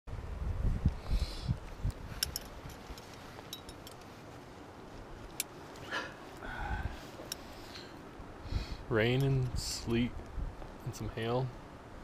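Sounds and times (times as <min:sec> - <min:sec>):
climbing hardware clinking: 0:02.1 - 0:04.3.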